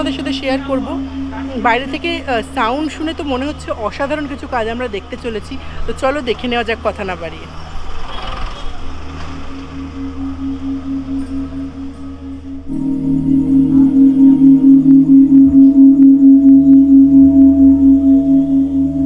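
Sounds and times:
ambient drone music: 0.0s - 7.8s, 8.8s - 19.0s.

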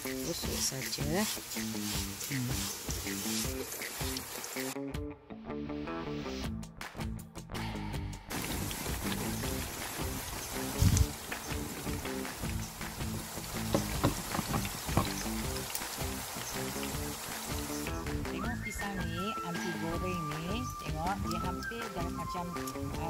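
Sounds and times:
food sizzling in hot oil: 0.0s - 4.8s, 8.3s - 23.0s
background music: 0.0s - 23.0s.

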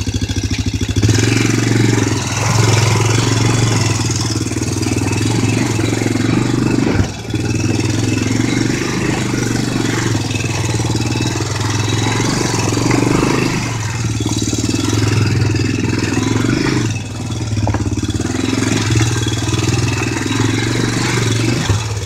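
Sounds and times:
off-road vehicle engine revving: 0.0s - 22.0s.

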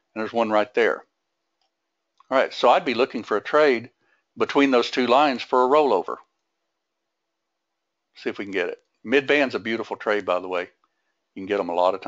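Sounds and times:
faint room hum: 0.0s - 12.0s
man's voice: 0.2s - 1.0s, 2.3s - 6.2s, 8.2s - 10.7s, 11.4s - 12.0s.

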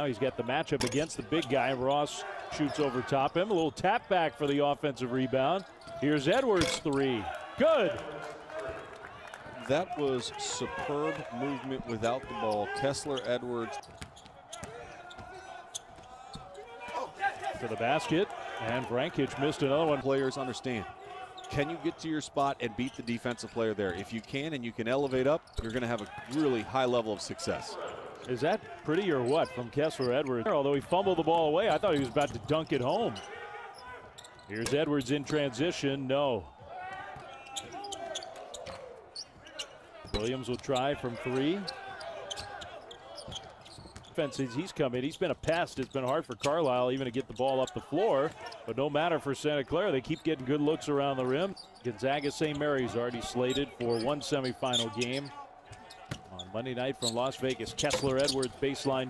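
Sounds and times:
basketball bouncing on court: 13.8s - 16.5s, 55.8s - 56.4s.

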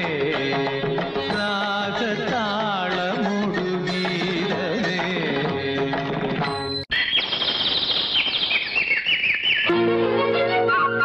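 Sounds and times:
bird-like chirps: 6.5s - 9.7s
sustained orchestral notes: 9.7s - 11.0s.

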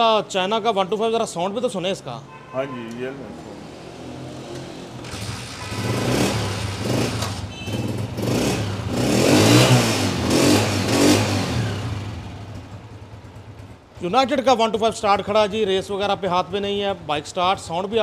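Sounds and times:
motorcycle engine idling and revving: 3.3s - 18.0s.

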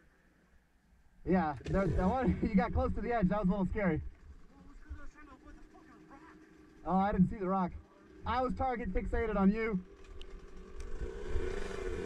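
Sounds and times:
dirt bike engines idling: 1.3s - 12.0s.

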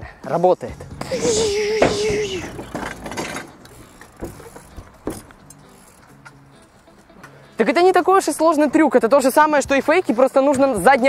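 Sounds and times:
bike knocks and rattles: 1.0s - 6.4s.

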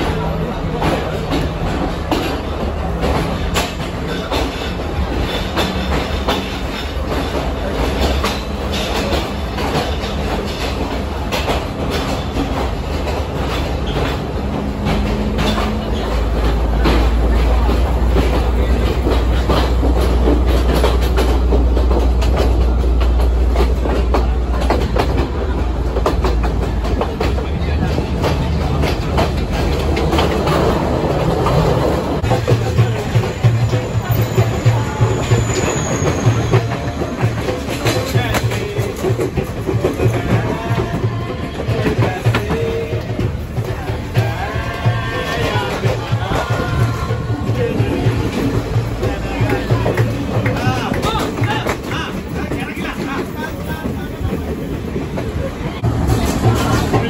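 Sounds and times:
idling diesel locomotive: 0.0s - 57.0s
train wheels clicking over rail joints: 0.0s - 57.0s.

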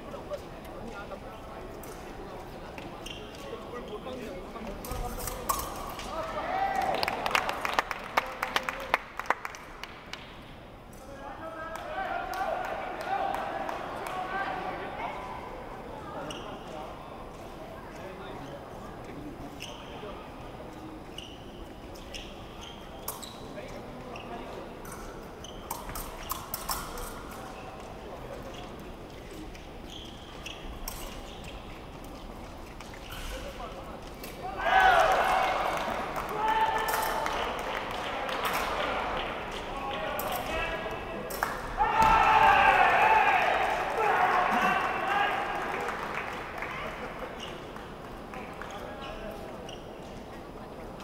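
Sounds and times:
voices murmuring in a hall: 0.0s - 51.0s
shoes squeaking: 2.8s - 4.3s, 20.9s - 26.4s, 28.4s - 34.5s, 48.7s - 50.3s.

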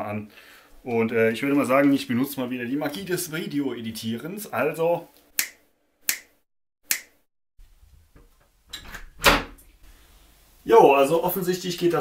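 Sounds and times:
finger snaps: 5.4s - 7.2s.

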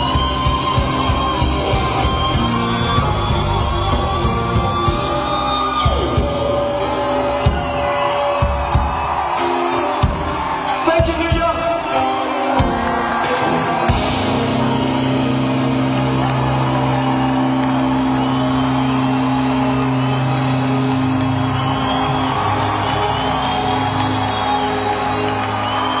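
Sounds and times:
crowd whooping and cheering: 0.0s - 26.0s.

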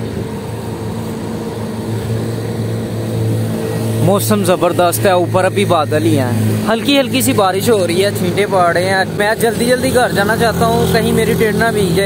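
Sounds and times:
vehicle engine droning: 0.0s - 12.0s.

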